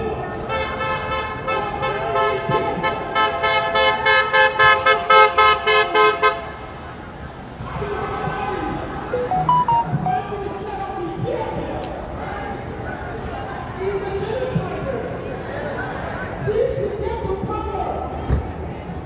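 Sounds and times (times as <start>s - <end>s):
voices of marching crowd: 0.0s - 19.0s.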